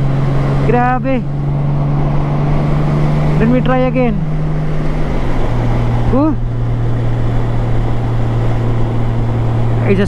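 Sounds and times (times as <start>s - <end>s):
motorcycle engine droning: 0.0s - 10.0s
wind rush over microphone: 0.0s - 10.0s.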